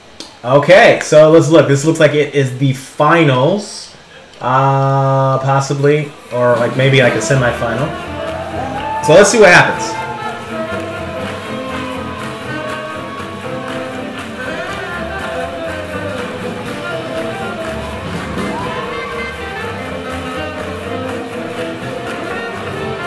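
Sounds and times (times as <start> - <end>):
swing jazz band playing: 6.4 - 23.0.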